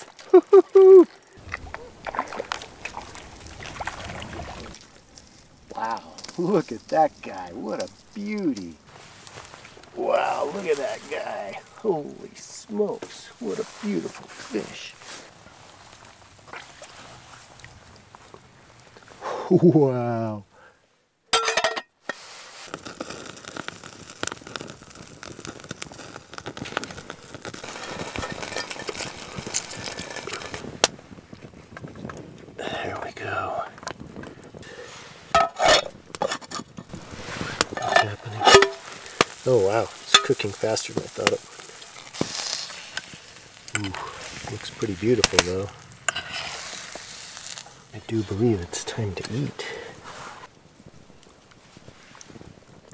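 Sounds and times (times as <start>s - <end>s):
wood fire crackling: 0.0s - 52.9s
hot oil sizzling in a pan: 22.8s - 30.6s, 37.0s - 48.9s.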